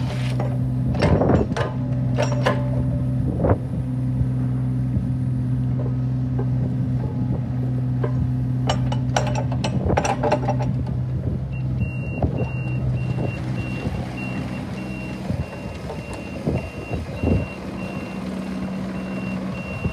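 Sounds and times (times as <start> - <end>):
excavator diesel engine running: 0.0 - 19.9
rattling knocks: 5.8 - 11.0.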